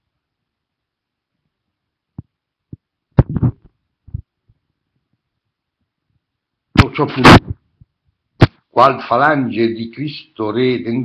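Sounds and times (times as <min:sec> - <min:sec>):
soft low thumps: 0:02.2 - 0:04.4
throat or mouth noise: 0:03.2 - 0:04.3.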